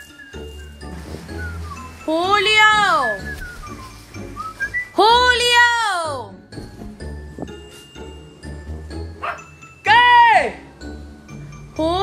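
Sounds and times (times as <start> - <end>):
man whistling sliding note: 3.2 - 5.0.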